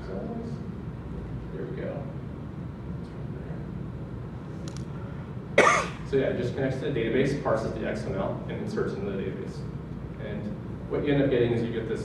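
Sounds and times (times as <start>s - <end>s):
low room hum: 0.0s - 12.0s
person coughing: 5.6s - 6.0s.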